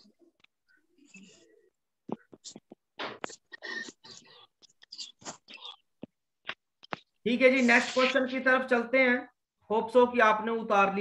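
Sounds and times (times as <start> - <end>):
person whispering: 6.8 - 8.4.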